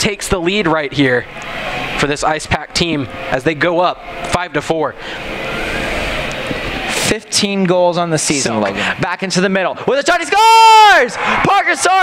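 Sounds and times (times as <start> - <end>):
spectators cheering: 0.6 - 7.0, 10.0 - 12.0.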